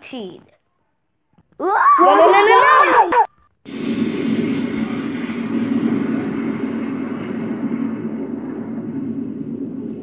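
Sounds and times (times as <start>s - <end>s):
explosion rumbling: 3.7s - 10.0s.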